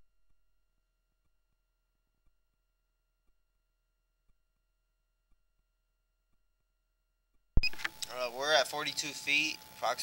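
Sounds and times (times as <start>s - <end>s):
microphone click: 7.6s - 8.2s
faint steady hum: 7.6s - 10.0s
man speaking: 8.0s - 10.0s.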